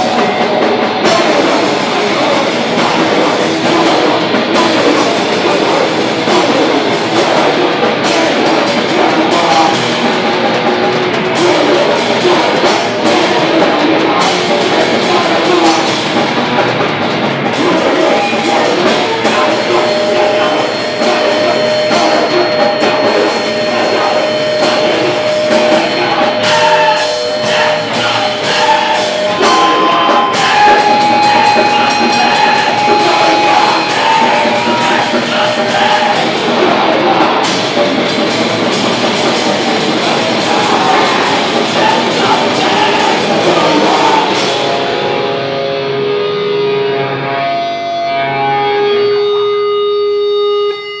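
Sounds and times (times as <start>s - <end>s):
live rock band playing: 0.0s - 51.0s
guitar amplifier feedback tone: 17.6s - 51.0s
cymbal crashes: 18.2s - 36.6s.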